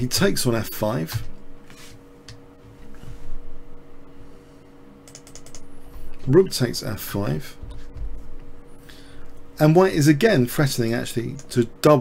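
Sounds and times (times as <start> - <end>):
faint electrical hum: 0.0 - 12.0
computer keyboard clicks: 5.1 - 5.6.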